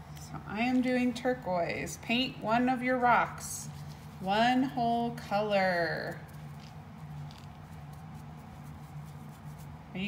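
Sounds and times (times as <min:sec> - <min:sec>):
low steady hum: 0:00.0 - 0:10.0
paintbrush scratching on rock: 0:05.9 - 0:09.8.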